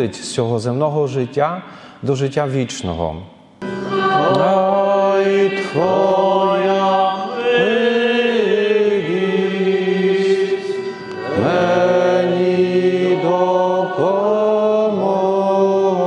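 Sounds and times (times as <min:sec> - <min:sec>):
voices singing slow chant: 0:03.6 - 0:16.0.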